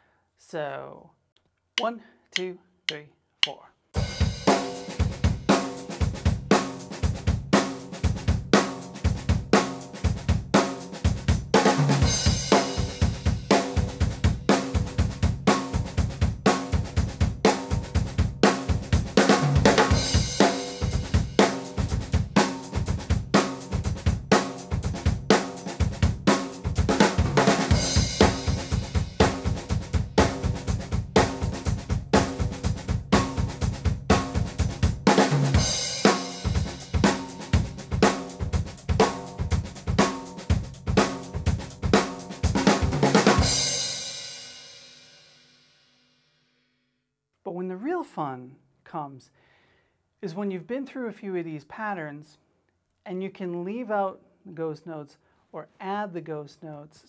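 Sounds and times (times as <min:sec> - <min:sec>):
acoustic drum kit groove: 0:01.8 - 0:45.6.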